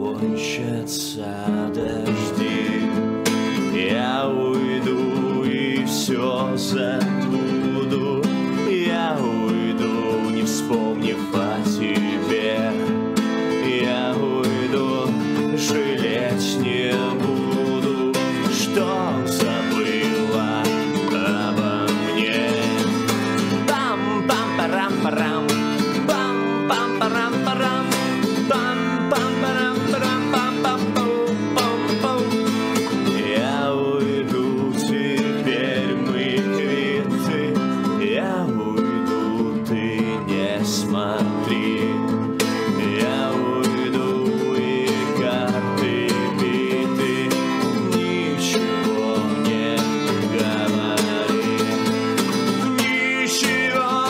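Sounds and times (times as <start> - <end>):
acoustic guitar strumming: 0.0 - 54.0
man singing: 0.0 - 54.0.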